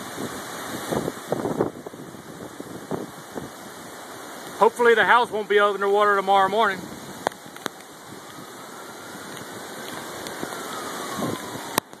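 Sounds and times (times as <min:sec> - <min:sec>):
wind and rain rushing: 0:00.0 - 0:12.0.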